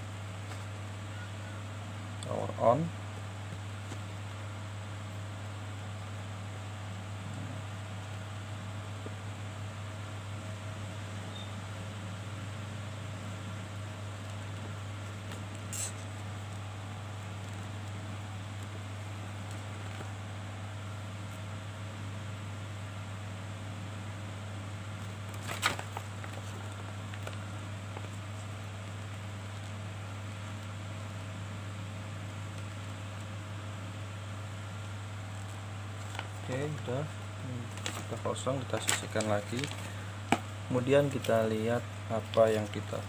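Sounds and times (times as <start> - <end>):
steady low hum: 0.0 - 43.0
paper leaflet rustling: 25.2 - 28.5, 35.3 - 36.9, 37.6 - 41.5.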